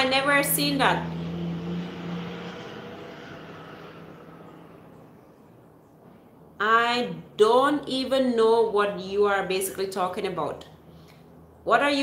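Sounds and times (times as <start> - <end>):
vehicle passing: 0.0 - 6.6.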